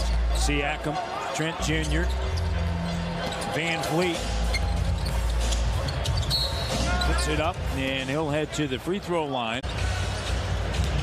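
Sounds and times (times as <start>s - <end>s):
arena crowd hum: 0.0s - 11.0s.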